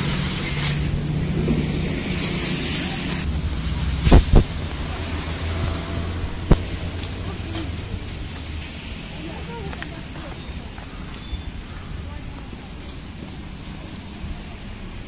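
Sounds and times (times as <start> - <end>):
street noise: 0.0 - 15.0
vehicle engine humming: 0.0 - 15.0.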